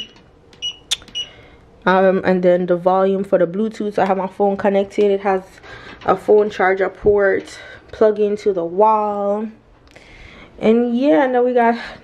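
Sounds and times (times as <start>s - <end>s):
touch panel beeps: 0.0s - 1.4s
sharp click: 0.1s - 1.2s.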